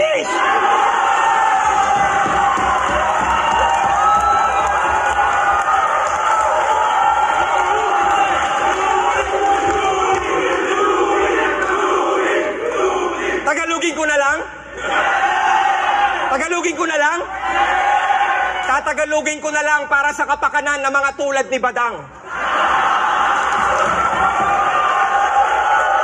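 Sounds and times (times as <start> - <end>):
crowd shouting and cheering: 0.0 - 19.2, 22.1 - 26.0.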